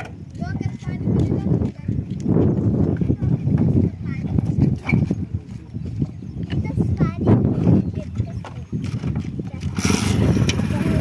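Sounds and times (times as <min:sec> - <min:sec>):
wind buffeting microphone: 0:00.0 - 0:11.0
people talking: 0:00.4 - 0:02.3, 0:02.9 - 0:04.8, 0:06.5 - 0:08.6, 0:09.4 - 0:11.0.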